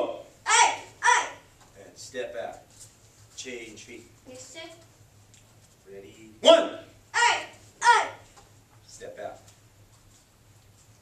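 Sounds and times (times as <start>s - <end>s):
child shouting: 0.4s - 1.5s, 7.1s - 8.3s.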